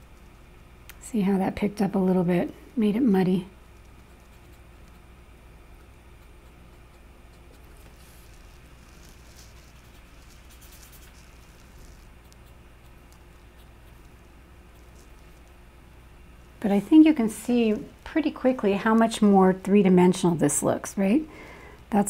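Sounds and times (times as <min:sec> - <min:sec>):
low background hum: 0:00.0 - 0:22.0
marker scratching on paper: 0:06.2 - 0:13.0.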